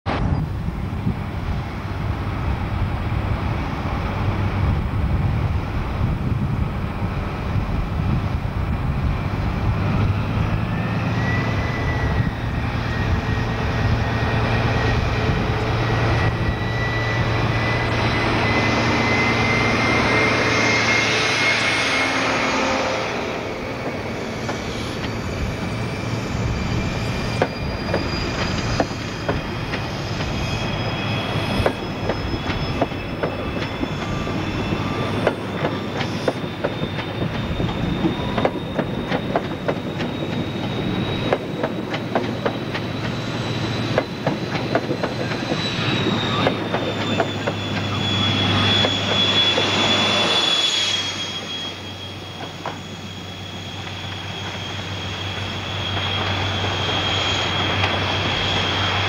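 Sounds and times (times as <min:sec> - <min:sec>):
diesel train engine whine: 0:00.1 - 0:59.0
train wheels clickety-clack: 0:27.3 - 0:30.6, 0:31.2 - 0:59.0.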